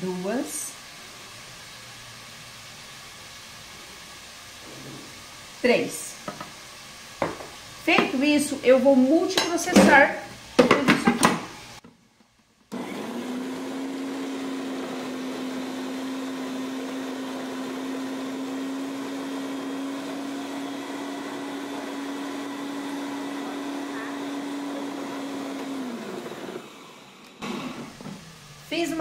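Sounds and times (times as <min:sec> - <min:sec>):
food processor motor humming: 0:12.7 - 0:29.0.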